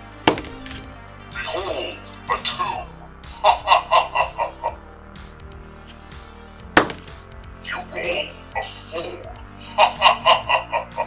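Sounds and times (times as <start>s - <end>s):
die knocking on a table: 0.3s - 0.9s, 6.8s - 7.2s.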